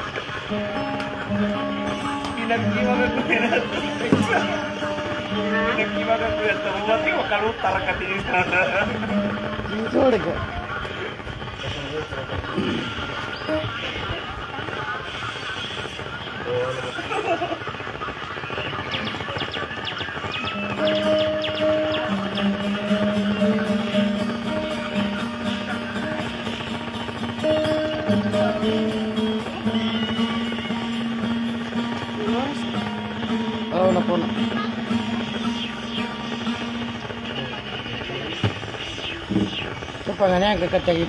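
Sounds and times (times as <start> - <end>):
acoustic guitar plucked notes: 0.0 - 10.6, 20.5 - 39.6
background chatter: 0.0 - 41.0.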